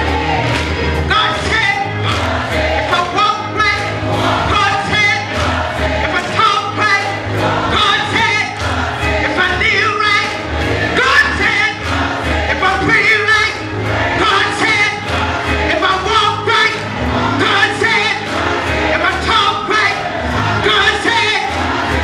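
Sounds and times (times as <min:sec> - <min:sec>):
gospel choir singing: 0:00.0 - 0:22.0
organ: 0:00.0 - 0:22.0.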